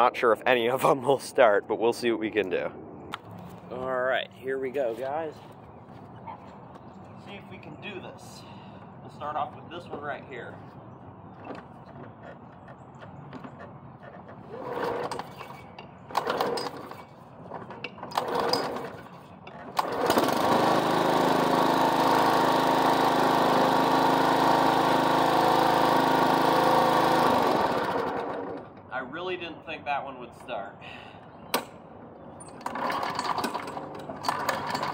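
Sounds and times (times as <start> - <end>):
mower starter cord pulls: 13.4 - 28.8, 32.5 - 34.9
lawn mower engine running: 16.1 - 28.9, 32.6 - 34.9.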